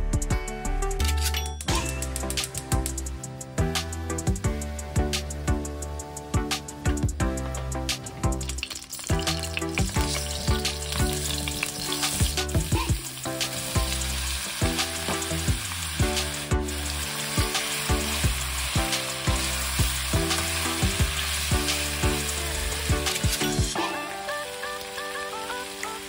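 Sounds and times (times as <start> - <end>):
soft background music: 0.0 - 26.0
food sizzling in hot oil: 7.8 - 26.0.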